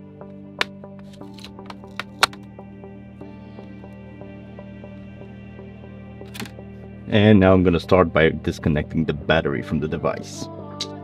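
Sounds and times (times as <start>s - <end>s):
background music: 0.0s - 11.0s
plastic clips snapping loose: 0.6s - 2.4s, 6.3s - 6.5s.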